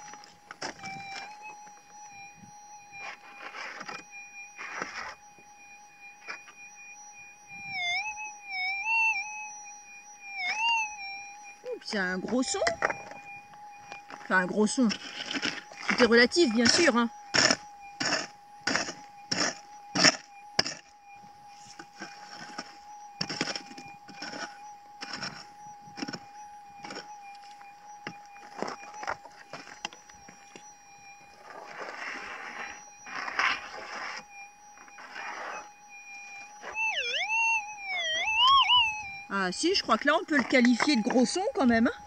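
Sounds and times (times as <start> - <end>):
metal detector humming tone: 0.0 - 42.0
metal detector tone warbling: 6.1 - 9.5, 10.2 - 42.0
woman speaking: 11.6 - 12.8, 14.2 - 15.0, 15.8 - 17.1, 39.3 - 42.0.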